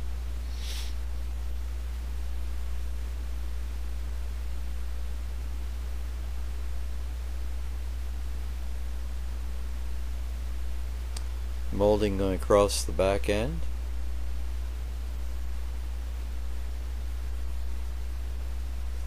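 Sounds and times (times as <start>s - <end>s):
even hiss: 0.0s - 1.1s
steady low hum: 0.0s - 19.0s.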